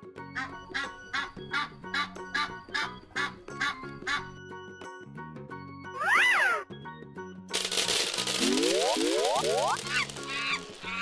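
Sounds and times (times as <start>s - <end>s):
children's background music: 0.0s - 11.0s
cartoon cry rising and falling: 6.0s - 6.7s
dense noisy burst of balls: 7.5s - 11.0s.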